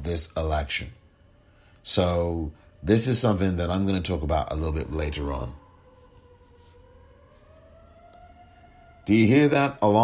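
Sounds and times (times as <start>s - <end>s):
faint siren rising: 0.0s - 10.0s.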